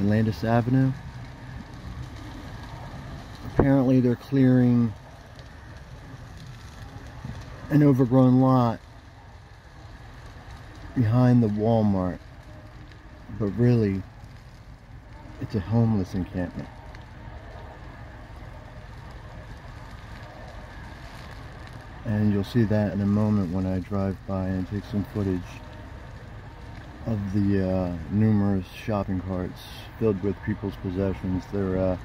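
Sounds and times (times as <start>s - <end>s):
outdoor background rumble: 0.0s - 32.0s
road noise: 0.0s - 32.0s.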